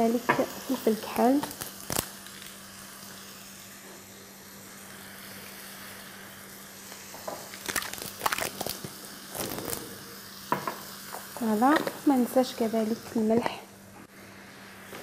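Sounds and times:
food sizzling in a pan: 0:00.0 - 0:15.0.

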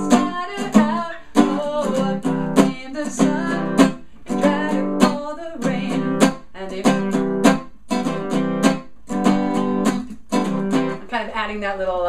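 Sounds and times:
woman singing: 0:00.0 - 0:07.6
muted acoustic guitar chords: 0:00.0 - 0:11.6.

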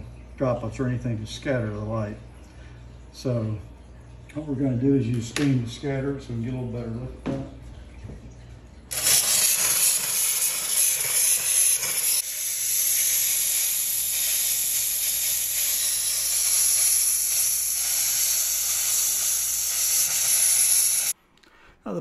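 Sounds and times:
steamer hissing: 0:08.9 - 0:21.2.

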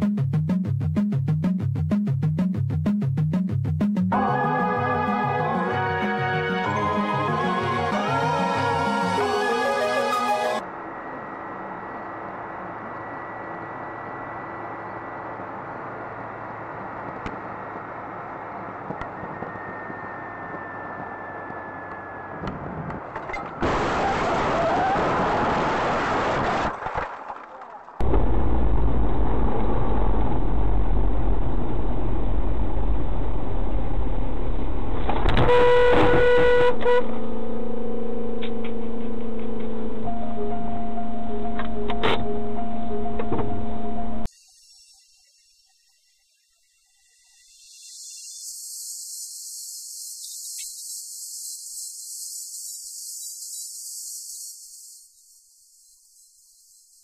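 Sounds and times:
car road and engine noise: 0:04.1 - 0:27.2, 0:27.9 - 0:44.3
car horn: 0:35.3 - 0:42.8.

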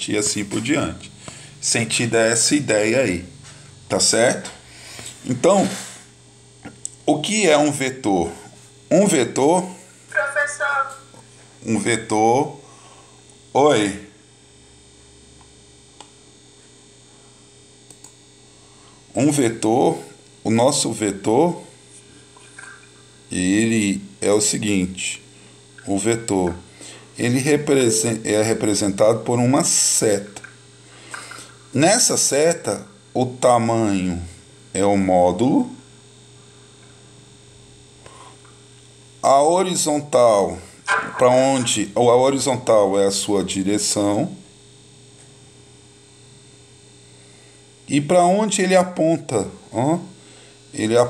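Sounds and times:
low electrical hum: 0:00.0 - 0:51.0.

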